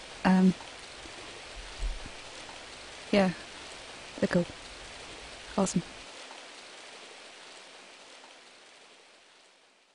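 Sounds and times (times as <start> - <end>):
faint steady hiss: 0.0 - 9.9.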